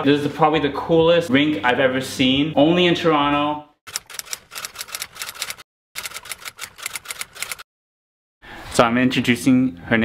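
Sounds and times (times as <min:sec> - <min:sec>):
typewriter key clacks: 0:03.9 - 0:07.6.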